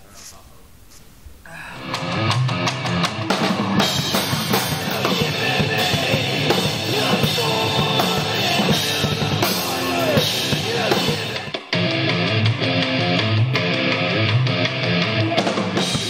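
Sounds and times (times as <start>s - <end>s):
drum kit: 1.8s - 16.0s
guitar playing: 1.8s - 16.0s
rock song: 1.8s - 16.0s.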